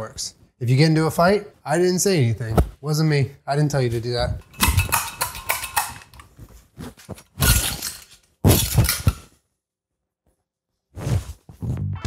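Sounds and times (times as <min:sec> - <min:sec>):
metal potato ricer clattering: 0:04.4 - 0:06.3, 0:07.4 - 0:09.2.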